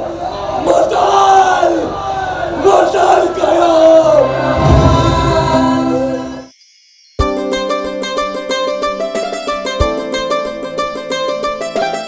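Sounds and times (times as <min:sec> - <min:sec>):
actors shouting drawn-out cries: 0:00.0 - 0:06.3.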